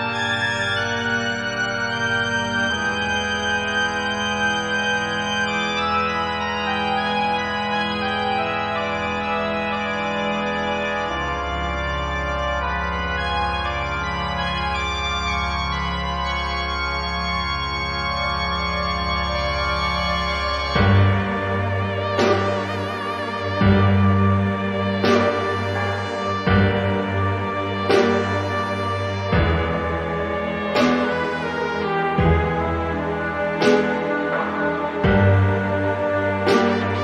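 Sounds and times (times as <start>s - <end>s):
slow organ chords: 0.0s - 37.0s.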